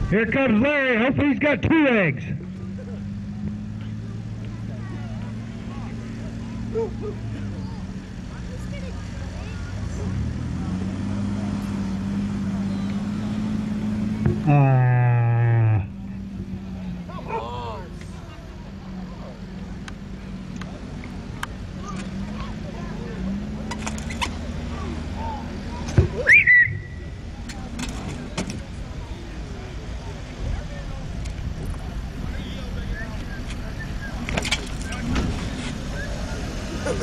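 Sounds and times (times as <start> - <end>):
engine running at low revs: 1.2 - 37.0.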